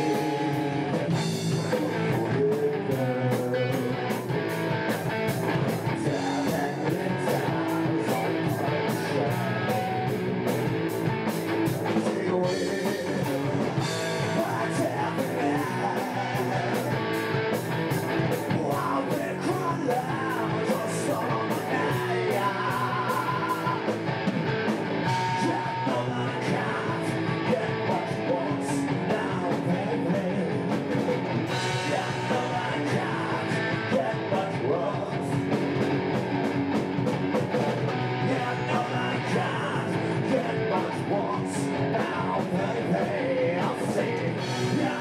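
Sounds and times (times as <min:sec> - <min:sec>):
drum kit with crashing cymbals: 0:00.0 - 0:02.5
person singing: 0:00.0 - 0:10.3, 0:11.8 - 0:24.2, 0:25.1 - 0:35.6, 0:38.1 - 0:45.0
bass guitar: 0:00.0 - 0:45.0
electric guitars: 0:00.0 - 0:45.0.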